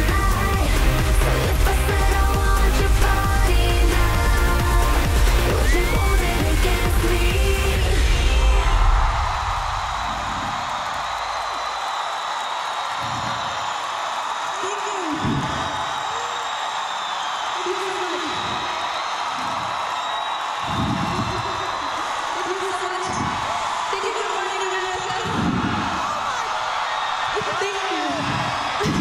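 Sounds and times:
music: 0.0 - 9.6
concert crowd cheering and screaming: 0.0 - 29.0
individual whoops and shouts: 5.4 - 6.2, 7.9 - 29.0.

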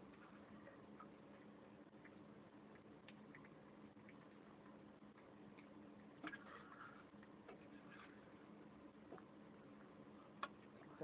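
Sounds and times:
cat eating from a plate: 0.0 - 11.0.

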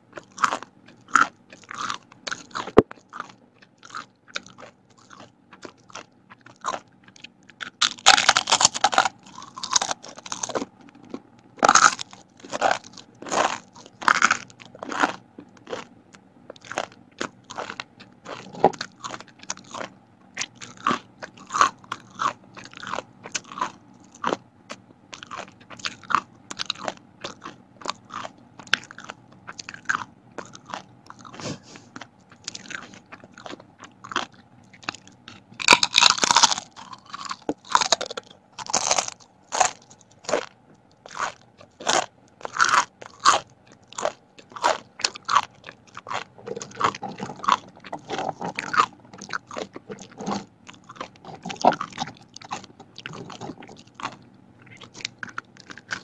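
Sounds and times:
crackers crunching: 0.0 - 56.0.

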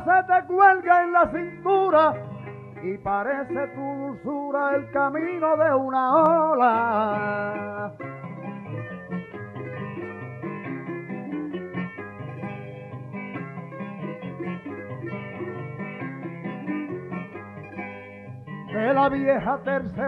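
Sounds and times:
plucked string instruments: 0.0 - 20.0.

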